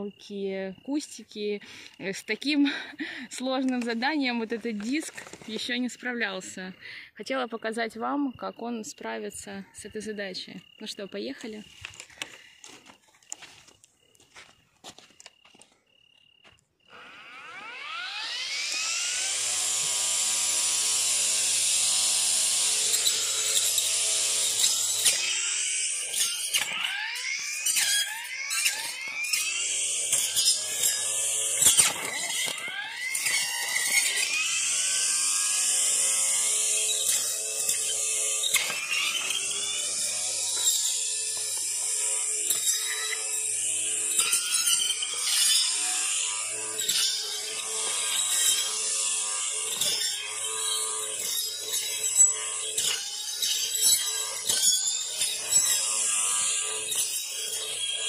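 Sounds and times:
trimmer motor whining: 1.1s - 6.6s, 16.8s - 58.0s
stems cracking as cut: 27.7s - 34.5s.

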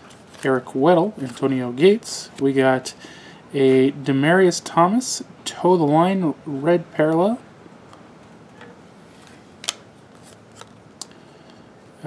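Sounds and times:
cards snapping and rustling: 9.2s - 10.8s.

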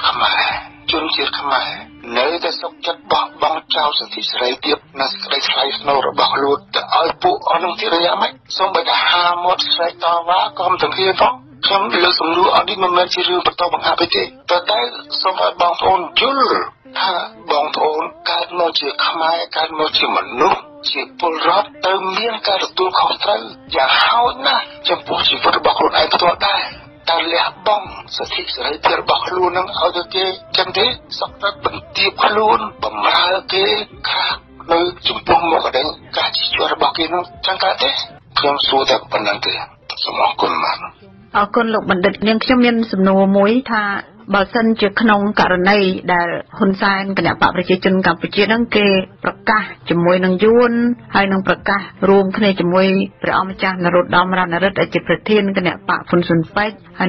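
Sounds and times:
man talking: 0.0s - 41.1s.

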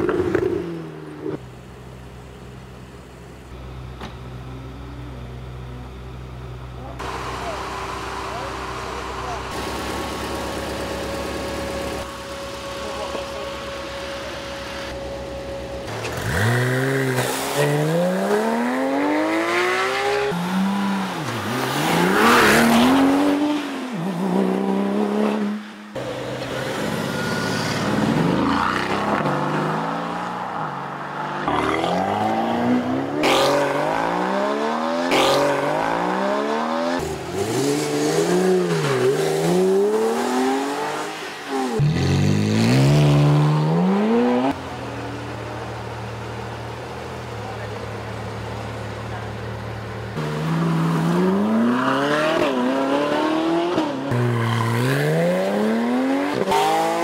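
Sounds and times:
sports car engines accelerating: 0.0s - 57.0s
engine idling: 1.4s - 16.0s.

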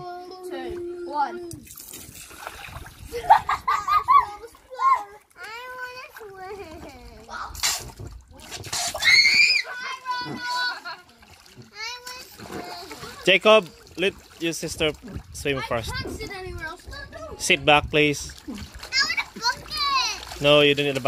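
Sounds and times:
children chattering and squealing: 0.0s - 1.7s, 3.0s - 14.0s, 15.6s - 17.4s, 18.6s - 20.4s
water splashing in pool: 0.4s - 21.0s.

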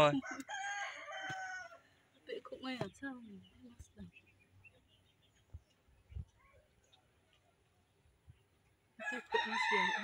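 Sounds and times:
rooster crowing: 0.2s - 1.8s, 9.0s - 10.0s.

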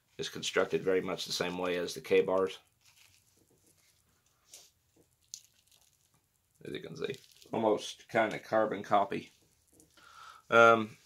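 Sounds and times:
soft rustle: 0.1s - 8.4s.

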